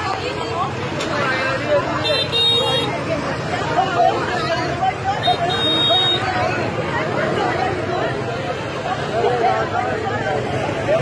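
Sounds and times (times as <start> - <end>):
crowd talking: 0.0 - 11.0
motorbike horn toot: 2.0 - 2.9, 5.2 - 6.3.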